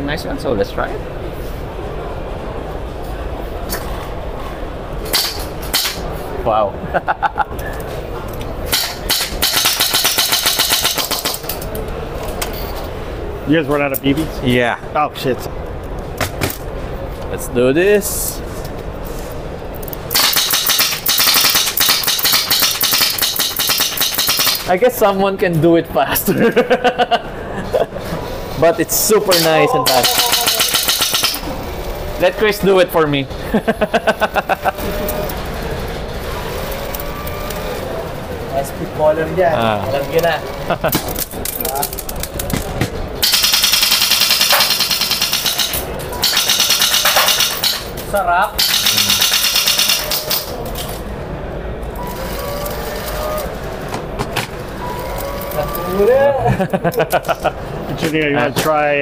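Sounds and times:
airsoft gun full-auto bursts: 20.1 - 24.7, 48.6 - 50.2
airsoft rifle rapid fire: 20.1 - 24.7, 29.9 - 31.5, 43.2 - 47.7, 48.6 - 50.3.

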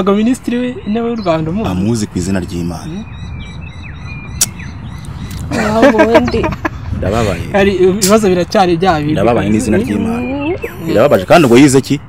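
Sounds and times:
low outdoor rumble: 0.0 - 11.8
birds chirping: 0.0 - 12.0.

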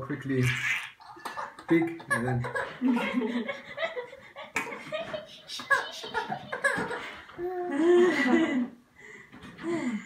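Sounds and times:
people laughing: 1.4 - 8.8.

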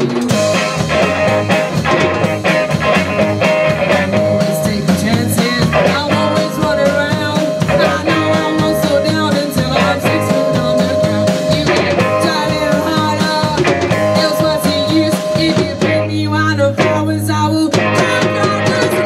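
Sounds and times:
drum kit driving beat: 0.0 - 19.0
electric guitars: 0.0 - 19.0.

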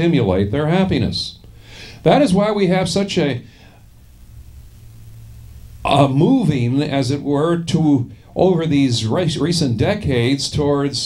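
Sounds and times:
faint low hum: 0.0 - 11.0
man speaking: 2.0 - 3.5, 5.9 - 11.0.

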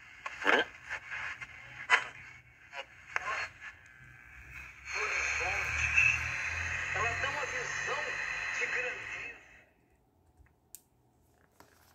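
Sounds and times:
radio hiss: 0.0 - 9.6
voice on small radio speaker: 0.2 - 3.8, 4.5 - 9.6.

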